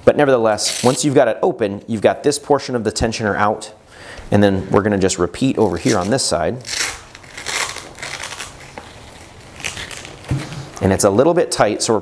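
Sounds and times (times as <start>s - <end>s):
velcro strap tearing apart: 0.6s - 1.0s, 5.7s - 10.2s.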